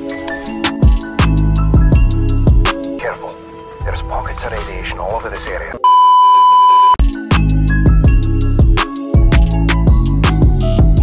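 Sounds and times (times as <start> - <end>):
montage music with drums and bass: 0.0 - 3.0, 7.0 - 11.0
test-tone beep: 5.8 - 7.0.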